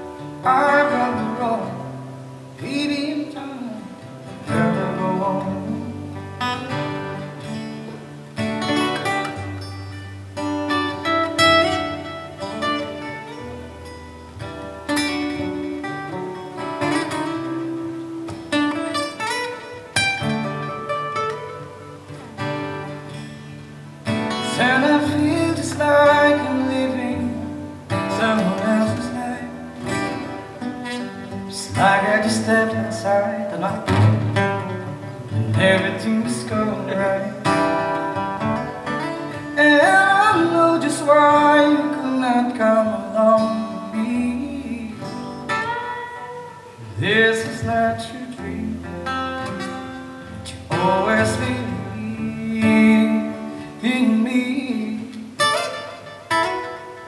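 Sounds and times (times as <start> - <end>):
man singing: 0.0 - 6.5, 24.2 - 38.2, 39.2 - 49.6, 50.4 - 55.9
acoustic guitar strumming: 0.0 - 57.0.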